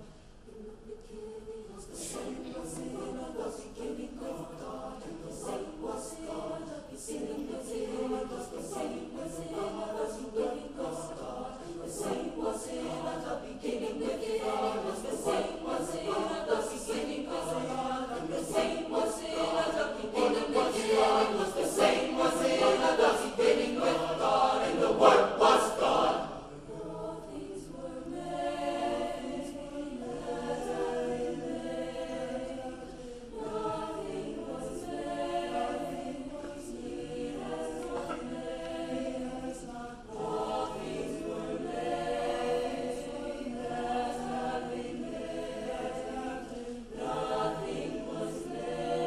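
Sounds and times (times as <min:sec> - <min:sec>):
mixed choir singing: 0:00.0 - 0:49.0.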